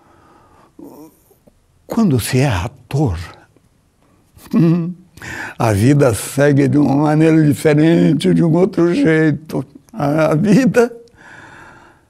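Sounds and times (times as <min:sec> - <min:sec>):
faint breath: 0:00.0 - 0:01.5, 0:05.2 - 0:05.6, 0:11.2 - 0:12.0.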